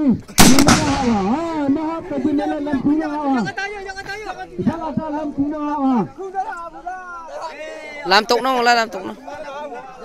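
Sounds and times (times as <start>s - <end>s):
gunshot echoing: 0.4s - 2.5s
man talking: 1.0s - 7.6s.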